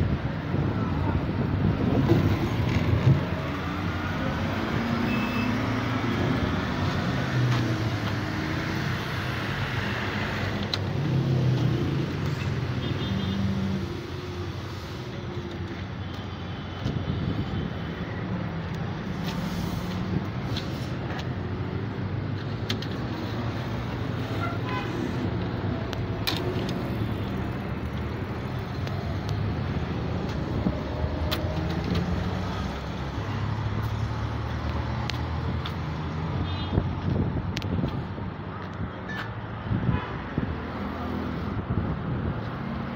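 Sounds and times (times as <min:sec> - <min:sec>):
vehicle engines humming: 0:00.0 - 0:42.9.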